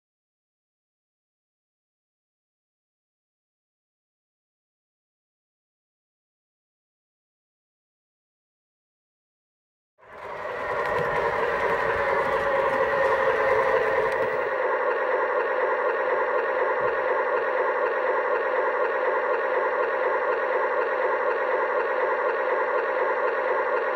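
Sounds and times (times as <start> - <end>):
model trains humming and whining: 10.0 - 23.9.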